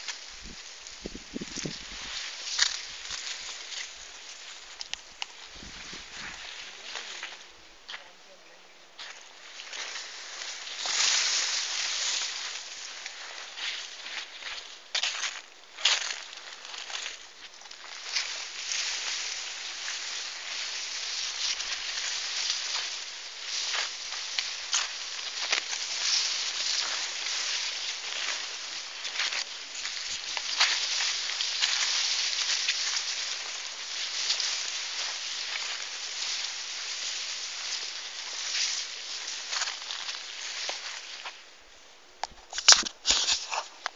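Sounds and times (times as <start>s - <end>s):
leaves rustling against microphone: 0.0s - 43.9s.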